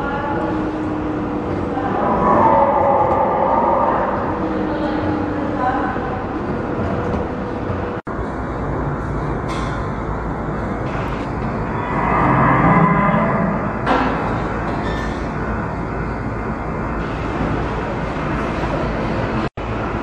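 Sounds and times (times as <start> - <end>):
indistinct voices: 0.0 - 8.0, 10.8 - 15.4
low rumble of hall: 0.0 - 20.0.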